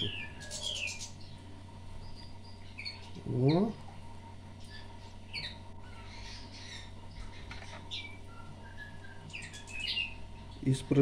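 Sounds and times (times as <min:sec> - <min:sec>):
nestlings chirping: 0:00.0 - 0:11.0.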